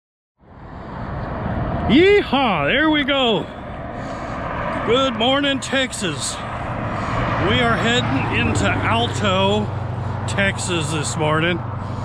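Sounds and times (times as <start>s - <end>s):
highway traffic noise: 0.4s - 12.0s.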